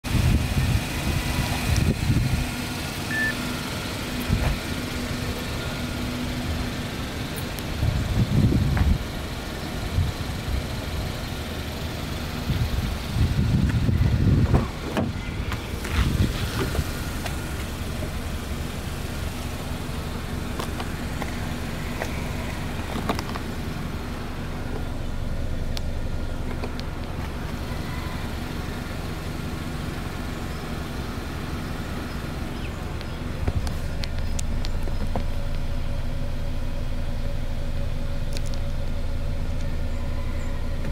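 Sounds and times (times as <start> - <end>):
car engine idling: 0.0 - 40.9
wind rumble on microphone: 0.1 - 2.6, 7.7 - 9.2, 12.4 - 16.8.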